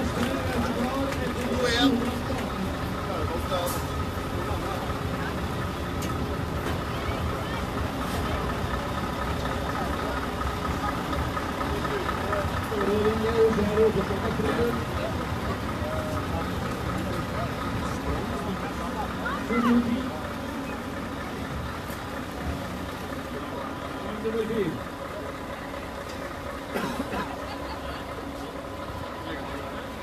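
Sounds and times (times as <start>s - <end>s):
truck engine idling: 0.0s - 30.0s
voices: 0.0s - 30.0s.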